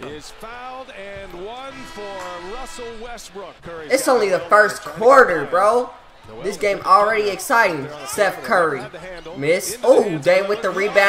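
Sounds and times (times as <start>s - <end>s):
tv sports commentary: 0.0s - 11.0s.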